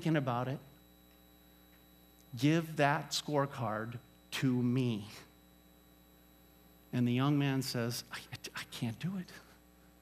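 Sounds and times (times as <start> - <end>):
faint electrical hum: 0.0 - 10.0
man's voice: 7.0 - 9.5.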